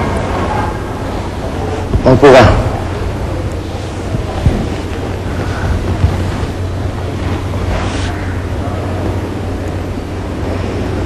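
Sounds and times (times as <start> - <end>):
low hum: 0.0 - 11.0
steady hiss: 0.0 - 11.0.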